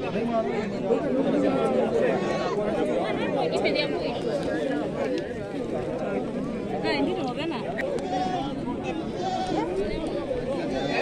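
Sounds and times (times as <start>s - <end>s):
crowd chatter: 0.0s - 11.0s
goats bleating: 9.1s - 9.7s.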